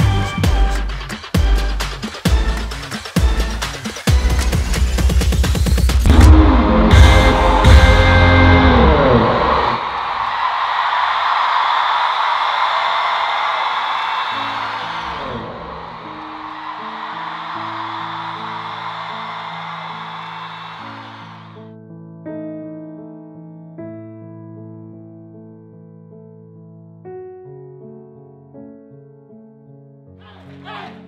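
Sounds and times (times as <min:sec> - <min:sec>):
electronic dance music: 0:00.0 - 0:10.1
concert crowd cheering: 0:06.0 - 0:21.6, 0:30.2 - 0:31.0.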